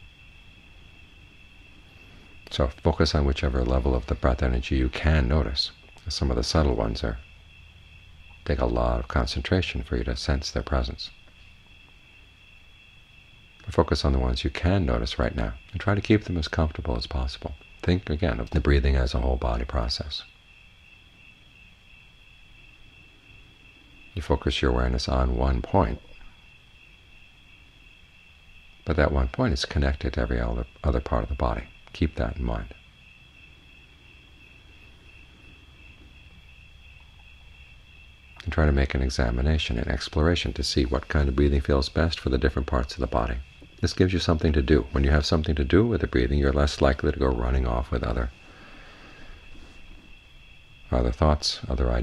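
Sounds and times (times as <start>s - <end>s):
crickets droning: 0.0s - 52.0s.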